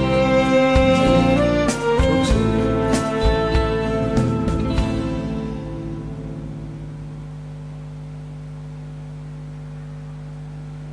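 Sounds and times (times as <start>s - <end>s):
backing track closing chord: 0.0s - 8.2s
held low tone: 0.8s - 10.9s.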